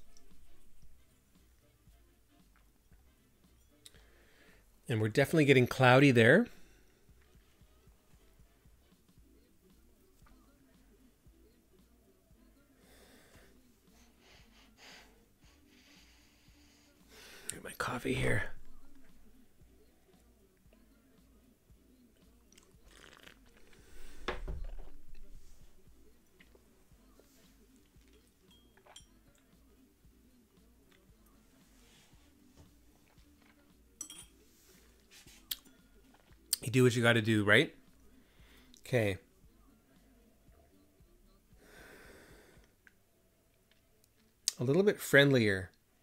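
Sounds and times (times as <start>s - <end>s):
faint background music: 0.0s - 46.0s
sniffing through the nose: 12.8s - 17.5s.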